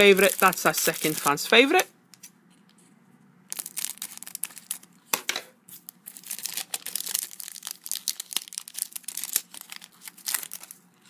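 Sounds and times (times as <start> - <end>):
plastic wrapper tearing and crinkling: 0.0 - 1.8, 3.5 - 5.0, 5.7 - 10.9.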